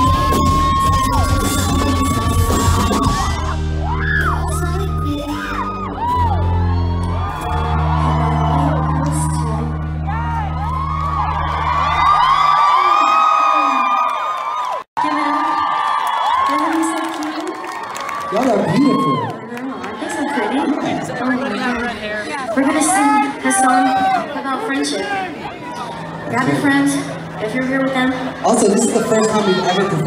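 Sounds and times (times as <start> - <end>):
live band playing loudly: 0.0 - 7.9
crowd screaming and cheering: 0.0 - 30.0.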